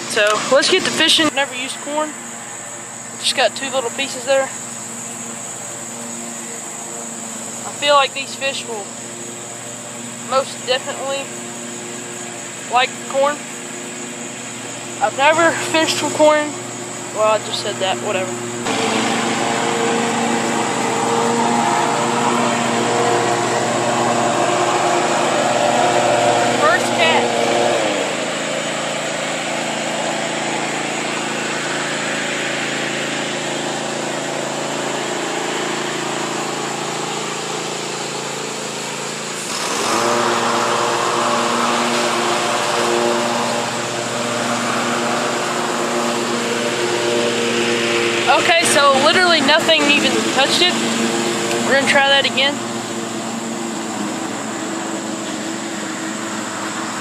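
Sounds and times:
lawn mower engine running: 0.0 - 57.0.

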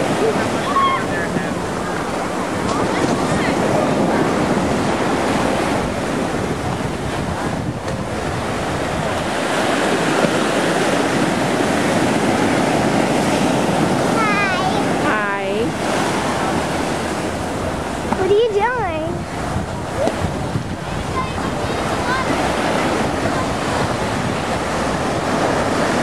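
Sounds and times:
ocean surf breaking: 0.0 - 26.0
wind buffeting microphone: 0.0 - 26.0.

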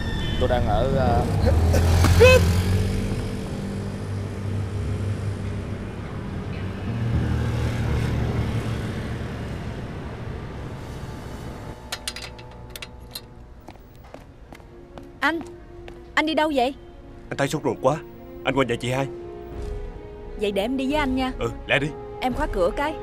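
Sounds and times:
motorbike passing: 0.0 - 15.2
traffic rumble: 0.0 - 21.2
metal door clicking and rattling: 11.8 - 13.3.

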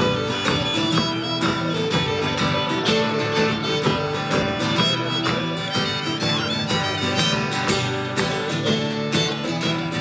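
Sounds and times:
acoustic guitar: 0.0 - 10.0
fiddle: 0.0 - 10.0.

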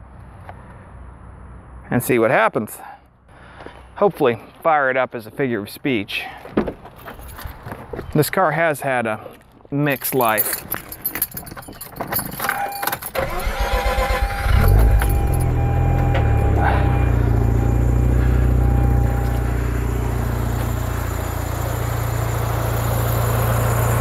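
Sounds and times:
rotary engine starting and idling: 12.5 - 24.0.

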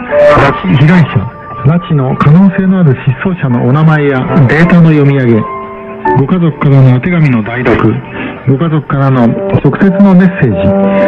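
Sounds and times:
music on radio: 0.0 - 11.0
radio announcer speaking: 6.2 - 10.8.

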